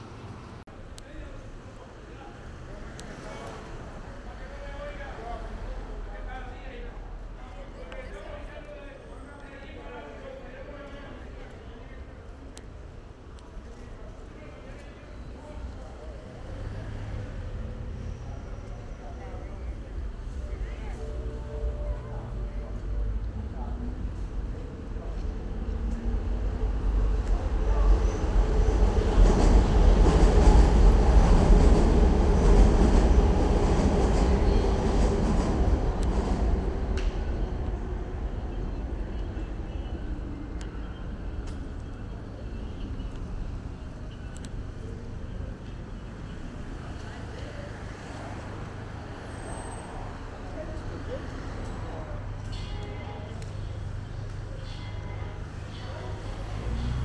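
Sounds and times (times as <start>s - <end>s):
street noise: 0.0s - 57.0s
elevated train rumbling overhead: 15.4s - 57.0s.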